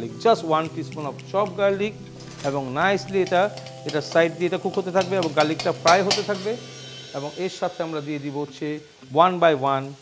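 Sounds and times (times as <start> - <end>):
man speaking: 0.6 - 6.6.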